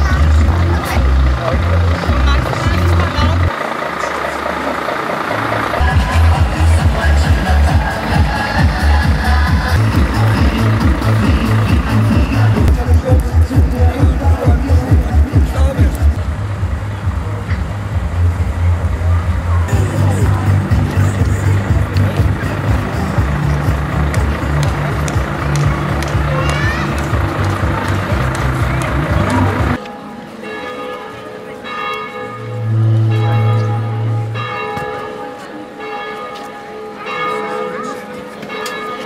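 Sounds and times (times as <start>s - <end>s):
loud music with pulsing bass: 5.4s - 29.8s.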